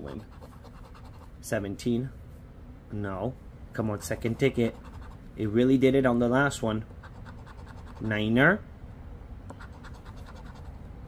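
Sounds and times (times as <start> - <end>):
scratching lottery ticket: 0.0 - 1.3, 4.0 - 5.2, 7.0 - 8.3, 9.6 - 10.8.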